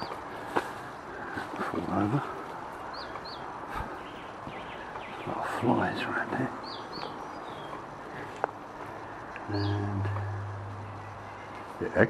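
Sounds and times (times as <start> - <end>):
steady rushing noise: 0.0 - 12.0
high bird chirp: 2.8 - 8.3, 9.0 - 11.6.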